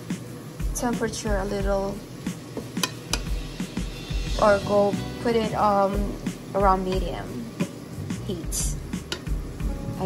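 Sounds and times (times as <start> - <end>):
spatula clicking against pan: 2.8 - 3.3.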